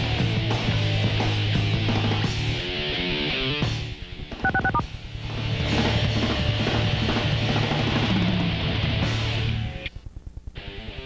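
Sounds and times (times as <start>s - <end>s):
touch-tone dialing beeps: 4.4s - 4.8s.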